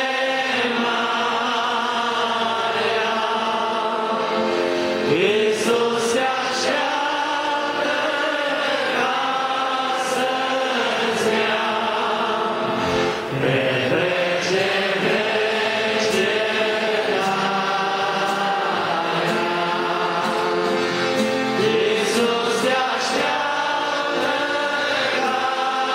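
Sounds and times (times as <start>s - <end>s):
congregation singing a hymn: 0.0s - 25.9s.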